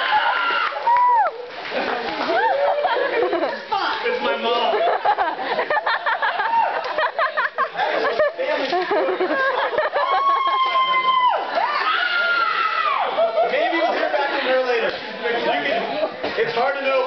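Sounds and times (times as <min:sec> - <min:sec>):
audience cheering and shouting: 0:00.0 - 0:01.6, 0:06.2 - 0:07.0, 0:09.8 - 0:13.6.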